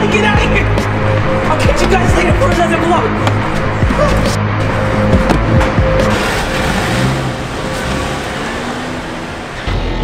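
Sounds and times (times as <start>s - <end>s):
background music: 0.0s - 10.0s
car engine and road noise: 0.0s - 10.0s.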